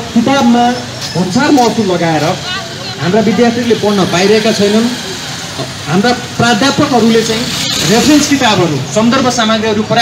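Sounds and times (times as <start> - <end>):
man speaking through loudspeaker: 0.0 - 5.2, 5.8 - 10.0.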